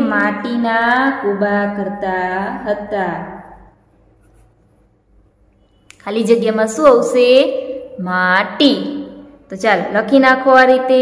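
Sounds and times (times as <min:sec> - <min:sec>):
person speaking: 0:00.0 - 0:04.6, 0:05.9 - 0:11.0
marker scratching on paper: 0:04.0 - 0:04.9.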